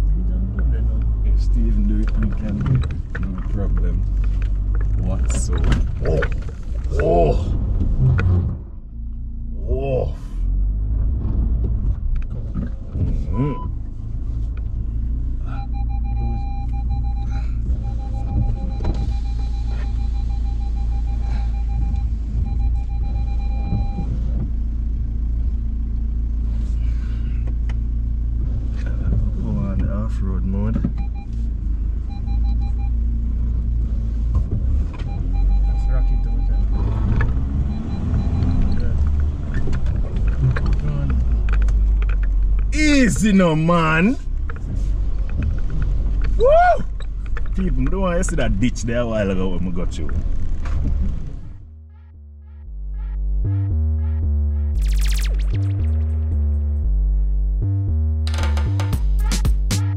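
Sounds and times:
engine and tyres rumbling: 0:00.0 - 0:59.9
rapid electronic beeping: 0:35.1 - 0:37.0, 0:52.0 - 0:56.9, 0:58.7 - 0:59.9.

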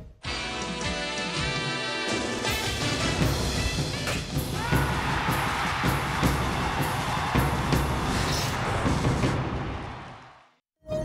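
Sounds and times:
news theme music: 0:00.4 - 0:10.0
steady drum beat: 0:02.7 - 0:10.0.

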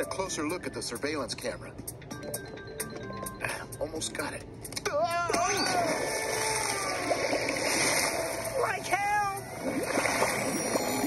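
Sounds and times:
splash into water: 0:05.8 - 0:08.4, 0:09.7 - 0:10.8
churning water rushing: 0:05.8 - 0:11.0.

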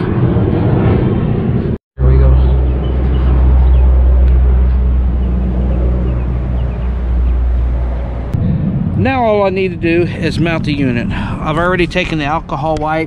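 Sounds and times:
airplane flying overhead: 0:00.0 - 0:13.0.

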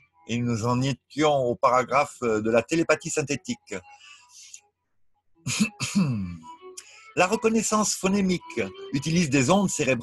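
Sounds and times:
man clearing his throat: 0:05.5 - 0:06.4.

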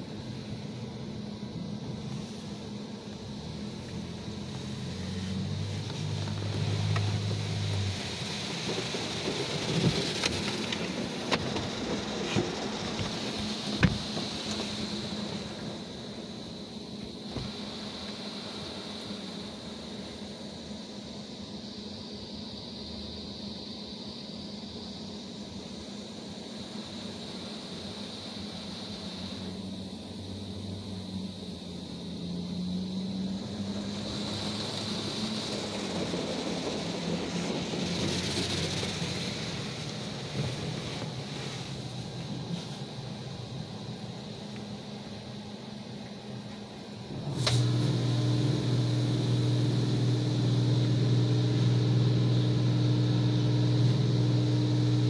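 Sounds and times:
spray drumming on car body: 0:06.0 - 0:15.6
steady low hum: 0:35.0 - 0:55.0.

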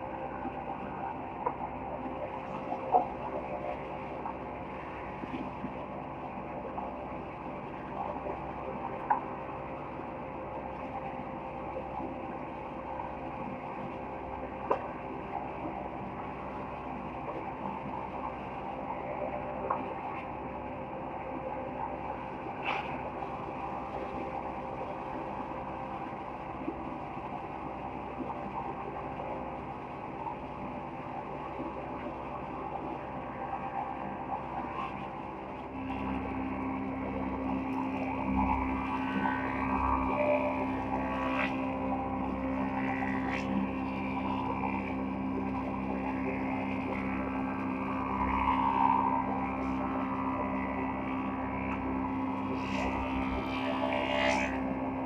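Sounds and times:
machine drone: 0:00.0 - 0:55.0.

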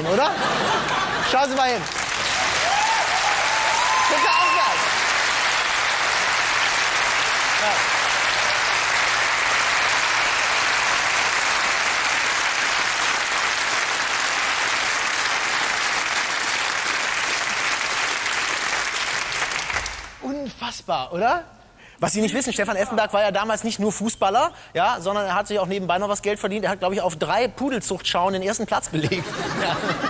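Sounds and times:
audience applauding: 0:00.5 - 0:20.2.

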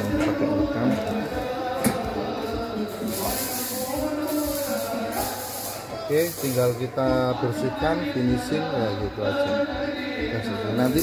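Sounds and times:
music with singing voice: 0:00.0 - 0:11.0
high hiss: 0:02.5 - 0:07.0.

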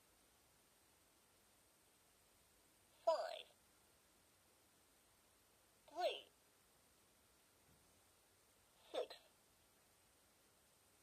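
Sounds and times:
toy recorded voice calling number: 0:03.0 - 0:03.6, 0:05.9 - 0:06.3, 0:08.8 - 0:09.3.

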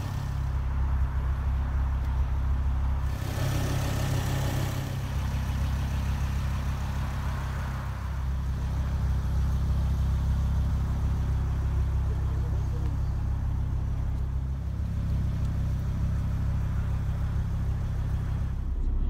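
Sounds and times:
car engine idling deep note: 0:05.1 - 0:19.0.

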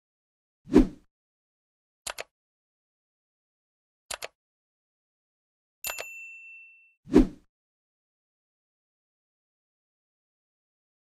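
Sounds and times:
bright bell ding: 0:05.8 - 0:07.0.

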